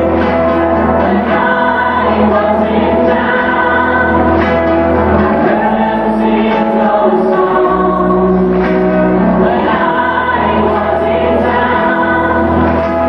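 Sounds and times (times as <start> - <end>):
bass line: 0.0 - 13.0
choir-like backing voices: 0.0 - 13.0
guitar: 0.0 - 13.0
keyboards: 0.0 - 13.0
person singing: 0.0 - 13.0.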